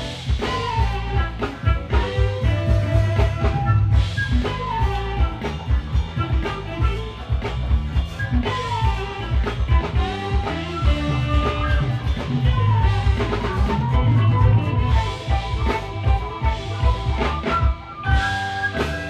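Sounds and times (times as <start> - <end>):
bass: 0.0 - 19.0
drum kit beat: 0.0 - 19.0
flute melody: 0.0 - 19.0
keyboards: 0.0 - 19.0.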